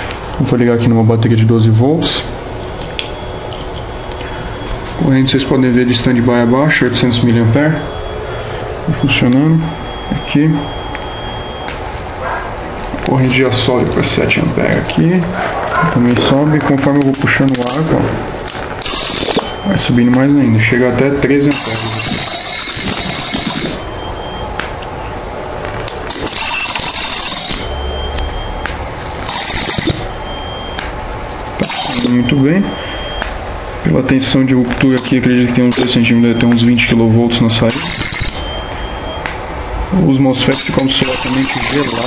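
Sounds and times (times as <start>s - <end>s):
high-pitched electrical whine: 0.0s - 42.0s
sharp electric snaps: 10.9s - 13.1s, 16.6s - 19.4s, 28.1s - 29.3s, 30.7s - 31.6s.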